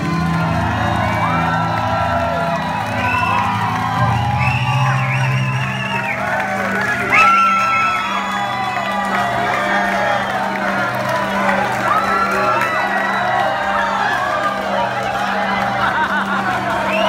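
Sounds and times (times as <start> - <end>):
crowd cheering and singing along: 0.0 - 17.0
loud whoop: 0.0 - 17.0.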